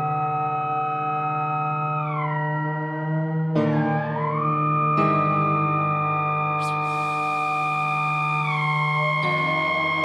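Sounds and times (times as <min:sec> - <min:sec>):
sustained synthesizer chord: 0:06.6 - 0:10.0.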